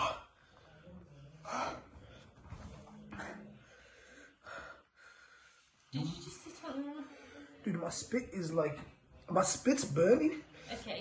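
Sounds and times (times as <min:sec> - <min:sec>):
man breathing hard: 0:03.1 - 0:05.9
man speaking: 0:07.6 - 0:10.5.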